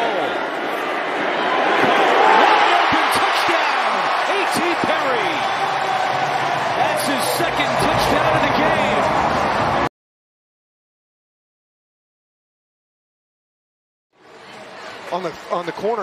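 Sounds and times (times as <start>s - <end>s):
stadium crowd cheering: 0.0s - 9.9s.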